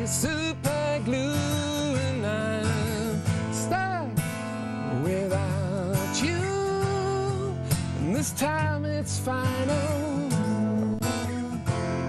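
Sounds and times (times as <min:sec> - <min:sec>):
man singing: 0:00.0 - 0:12.0
strummed acoustic guitar: 0:00.0 - 0:12.0.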